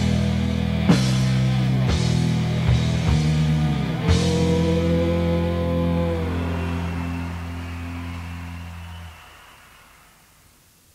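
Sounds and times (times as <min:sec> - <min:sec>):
metal guitar and bass chord: 0:00.0 - 0:06.7.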